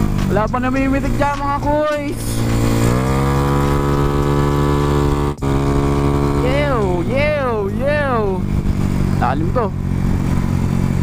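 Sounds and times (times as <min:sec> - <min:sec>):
scooter engine running: 0:00.0 - 0:11.0.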